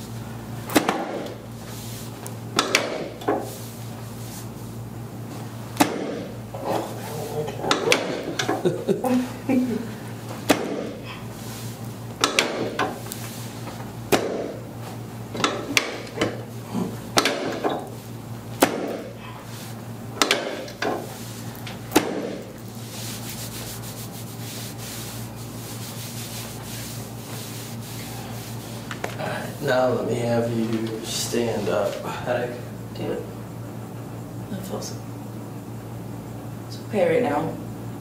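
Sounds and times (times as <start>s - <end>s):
hands rubbing on a back: 22.6s - 29.0s.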